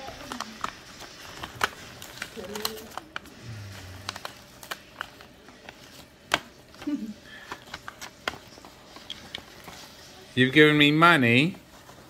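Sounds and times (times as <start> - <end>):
paper envelope crinkling: 0.0 - 12.0.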